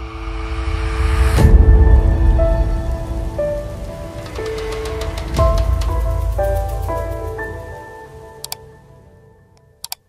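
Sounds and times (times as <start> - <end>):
deep rumble: 0.0 - 7.7.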